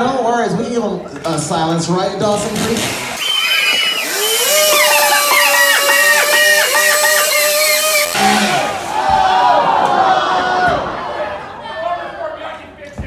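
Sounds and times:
chainsaw cutting wood: 2.5s - 8.9s.

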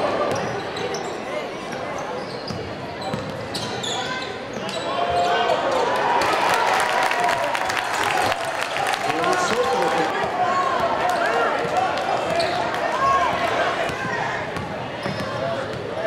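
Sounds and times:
crowd voices and shouts: 0.0s - 16.0s.

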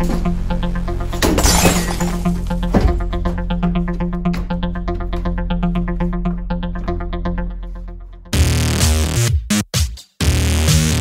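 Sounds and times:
electronic music with steady beat: 0.0s - 1.4s, 2.2s - 11.0s
glass shattering: 1.2s - 2.4s.

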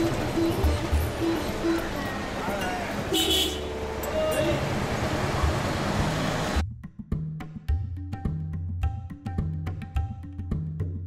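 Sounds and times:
voices: 0.0s - 5.9s
street traffic: 0.0s - 6.6s.

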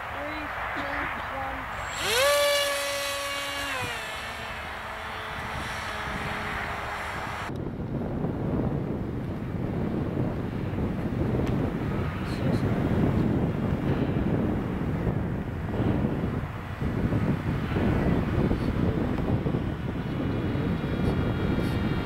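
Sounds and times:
electric motor and propeller whining: 0.0s - 7.6s
wind rumbling on microphone: 0.0s - 22.0s.

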